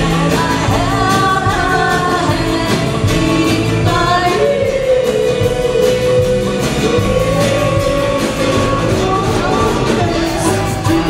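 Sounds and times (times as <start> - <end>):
drum kit beat: 0.0 - 11.0
electric guitars: 0.0 - 11.0
person singing: 0.0 - 11.0.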